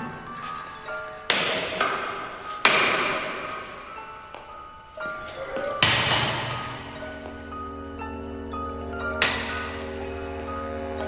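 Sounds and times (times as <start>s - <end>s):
soft musical score: 0.0s - 11.0s.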